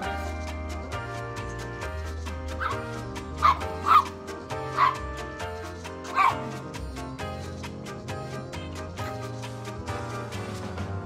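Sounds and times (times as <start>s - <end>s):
background music: 0.0s - 11.0s
small dog barking sharply: 3.4s - 4.1s, 4.7s - 5.0s, 6.1s - 6.5s.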